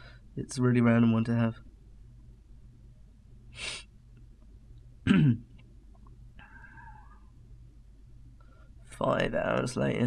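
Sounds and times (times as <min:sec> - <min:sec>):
cough-like vocal sound: 0:05.1 - 0:05.4.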